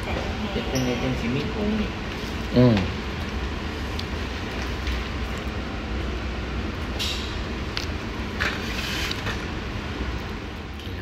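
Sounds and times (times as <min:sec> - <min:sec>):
low room rumble with hiss: 0:00.0 - 0:11.0.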